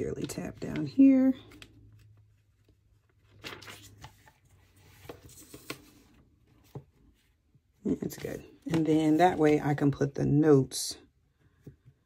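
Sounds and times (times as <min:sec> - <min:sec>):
pages turning: 0:00.0 - 0:09.8
paper rustling: 0:00.2 - 0:09.8.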